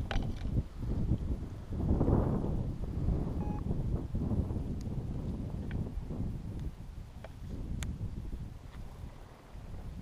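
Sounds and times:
wind buffeting microphone: 0:00.0 - 0:10.0
faint short beep: 0:03.4 - 0:03.7.

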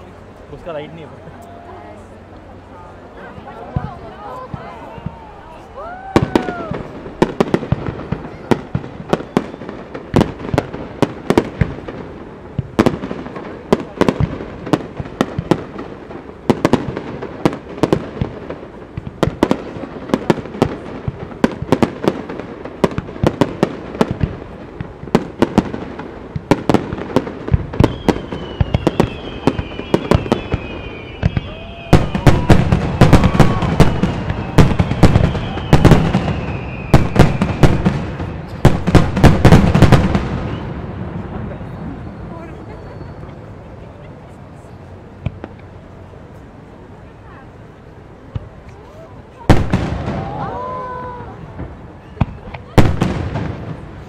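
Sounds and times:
firework bursts and cracks: 0:03.7 - 0:41.8, 0:48.3 - 0:54.0
falling whistling tones: 0:09.1 - 0:09.9, 0:27.8 - 0:37.7, 0:40.4 - 0:40.8, 0:41.6 - 0:43.5.

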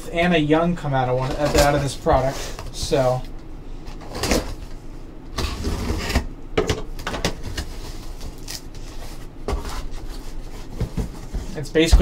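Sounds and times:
cardboard scraping and knocks: 0:09.4 - 0:12.0.

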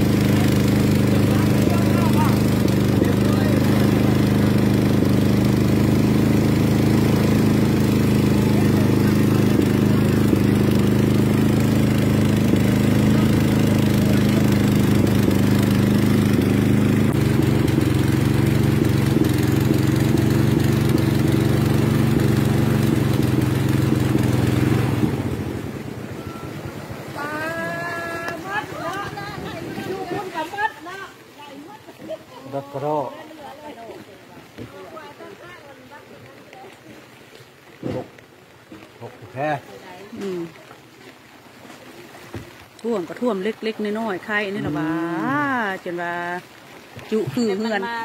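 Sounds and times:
motorboat engine running: 0:00.0 - 0:48.0
person speaking: 0:47.0 - 0:48.0.

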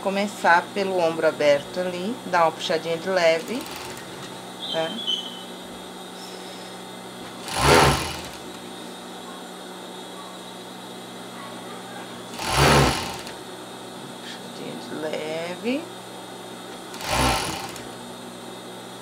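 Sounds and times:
steady low hum: 0:00.0 - 0:19.0
overlock sewing machine stitching: 0:03.4 - 0:04.1, 0:07.4 - 0:08.6, 0:12.4 - 0:13.4, 0:16.9 - 0:17.9.

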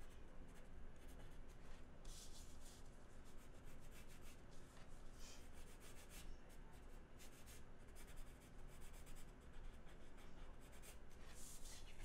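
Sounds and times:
pencil scratching on paper: 0:02.0 - 0:04.4, 0:05.4 - 0:12.0.

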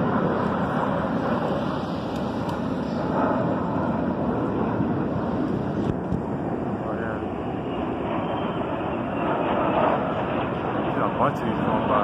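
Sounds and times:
jet aircraft rumble overhead: 0:00.0 - 0:12.0.

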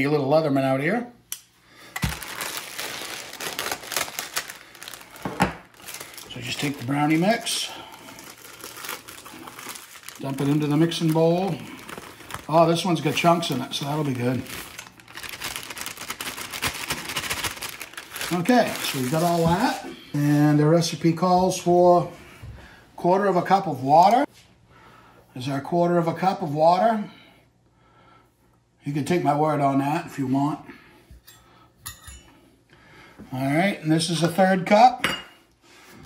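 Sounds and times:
plastic bag crinkling: 0:01.8 - 0:19.9
metal measuring cups clinking: 0:31.3 - 0:32.3.

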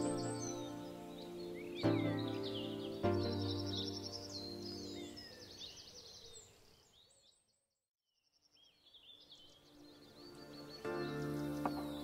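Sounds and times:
background music: 0:00.0 - 0:05.3, 0:09.6 - 0:12.0
birds chirping: 0:00.0 - 0:07.7, 0:08.3 - 0:12.0.

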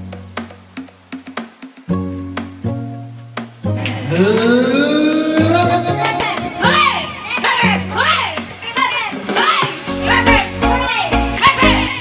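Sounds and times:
party music with bass line: 0:00.0 - 0:12.0
excited voices shouting: 0:03.9 - 0:12.0.

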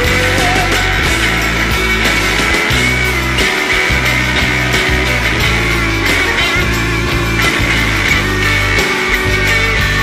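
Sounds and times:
bass line: 0:00.0 - 0:10.0
drums: 0:00.0 - 0:10.0
electric guitar: 0:00.0 - 0:10.0.

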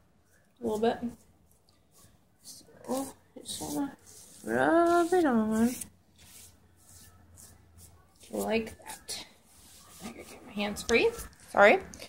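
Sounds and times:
hand rubbing cloth on skin: 0:00.3 - 0:11.5.

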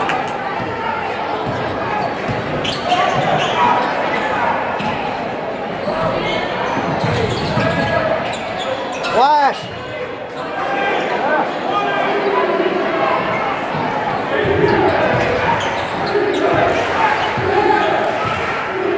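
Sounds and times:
crowd chatter: 0:00.0 - 0:18.9.

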